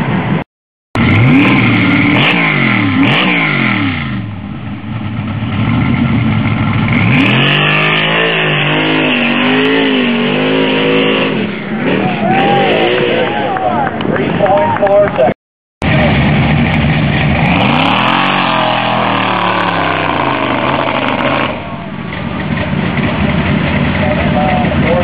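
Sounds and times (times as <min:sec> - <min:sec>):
truck engine revving hard: 0:00.0 - 0:04.4, 0:05.0 - 0:14.6, 0:15.8 - 0:25.0.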